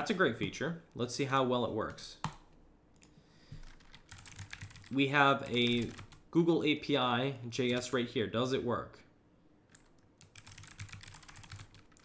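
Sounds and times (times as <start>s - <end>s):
computer keyboard keystrokes: 3.0s - 5.0s, 5.6s - 6.2s, 9.7s - 12.0s.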